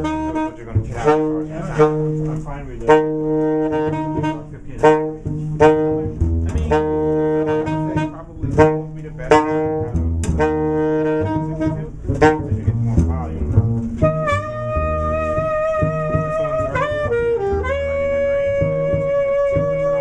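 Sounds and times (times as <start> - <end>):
alto saxophone held notes: 0.0 - 20.0
plucked double bass: 0.0 - 20.0.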